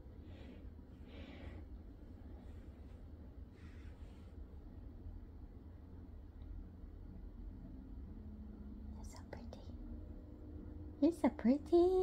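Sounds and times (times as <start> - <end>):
faint room hum: 0.0 - 12.0
person whispering: 9.0 - 9.8.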